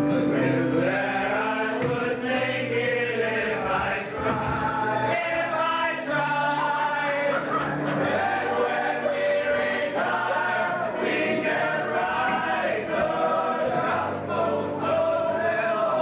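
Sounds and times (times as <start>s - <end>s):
male chorus singing: 0.0s - 16.0s.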